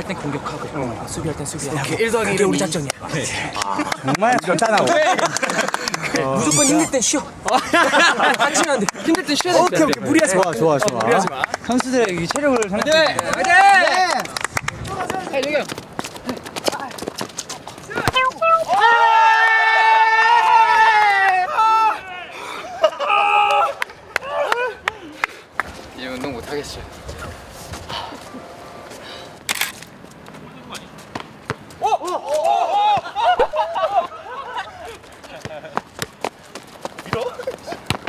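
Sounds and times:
players shouting high calls: 17.9 - 25.1.

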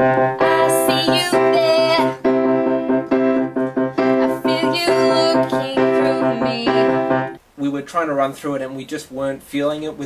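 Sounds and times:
piano playing repeated chords: 0.0 - 7.4.

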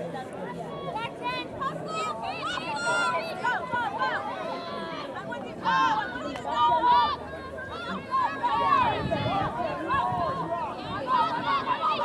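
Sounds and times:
players and spectators shouting: 0.4 - 12.0.

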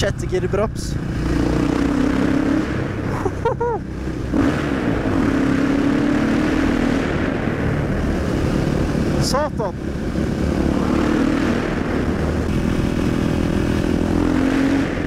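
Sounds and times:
motorcycle engine running hard: 0.0 - 15.0.

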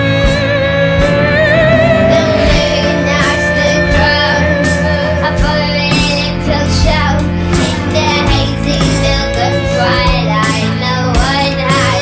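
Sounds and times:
sustained low instrument notes: 0.0 - 7.5
high female voice singing: 0.0 - 12.0.

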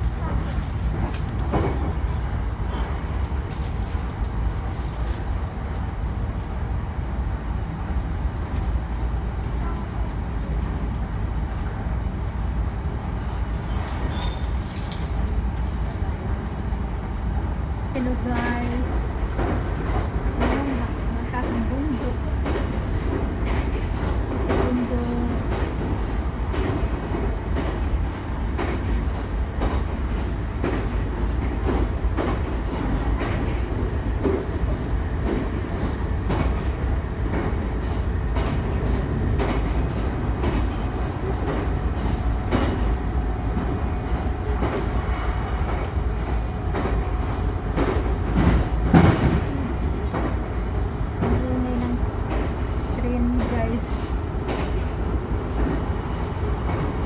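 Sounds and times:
train rumble inside carriage: 0.0 - 57.0.

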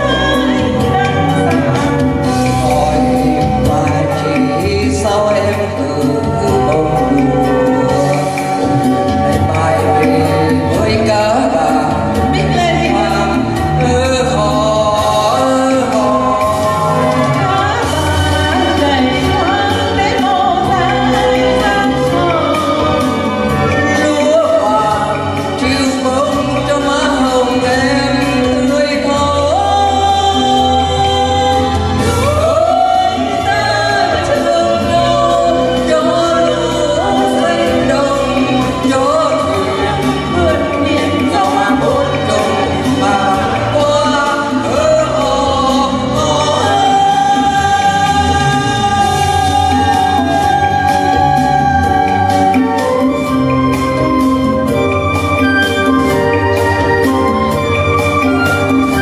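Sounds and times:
karaoke backing track: 0.0 - 59.0
woman singing into a microphone: 0.0 - 59.0.

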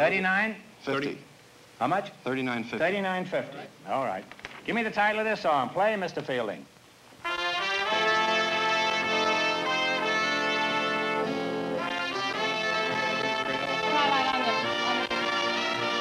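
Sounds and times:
brass band playing held chords: 7.2 - 16.0.

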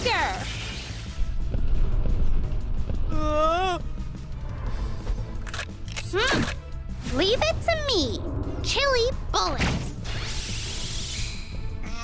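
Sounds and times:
cartoon background music: 5.7 - 12.0
hissing whoosh: 9.9 - 11.8.

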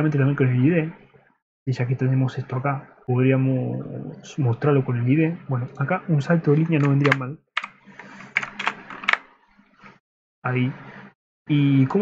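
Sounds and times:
computer keyboard key clicks: 6.8 - 7.8, 8.4 - 9.2.

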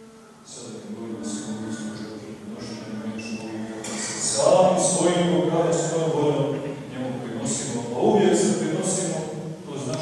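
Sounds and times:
man speaking in reverberant church: 0.2 - 10.0.

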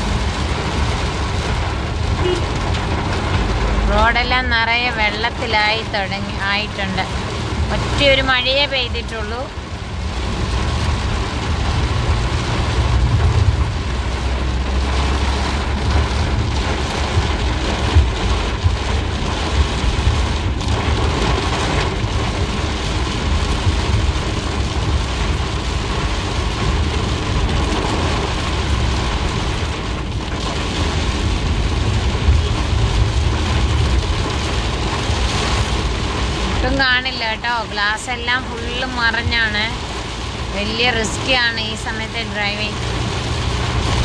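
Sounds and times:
heavy rain on car roof: 0.0 - 44.0.

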